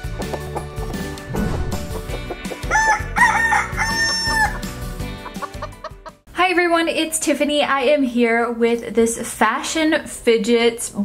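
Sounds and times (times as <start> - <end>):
upbeat intro jingle: 1.0 - 3.6
rooster crowing: 2.6 - 4.8.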